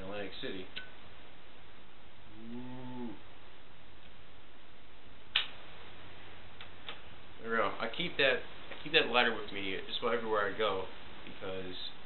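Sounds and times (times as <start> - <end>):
man humming: 2.3 - 3.3.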